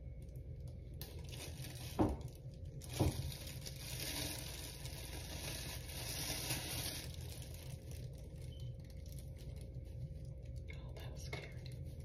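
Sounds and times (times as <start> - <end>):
plastic bag rustling against hair: 0.2 - 10.7.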